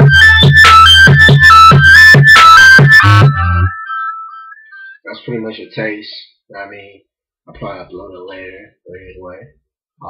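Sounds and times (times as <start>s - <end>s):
high synth note: 0.0s - 4.5s
hip-hop beat with deep bass: 0.0s - 5.0s.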